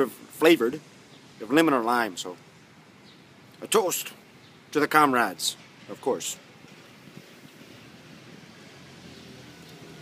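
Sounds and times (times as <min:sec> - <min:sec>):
distant traffic hiss: 0:00.0 - 0:10.0.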